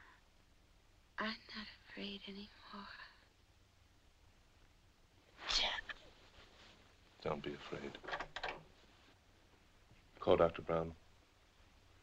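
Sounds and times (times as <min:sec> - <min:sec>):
person whispering: 0:05.4 - 0:06.0.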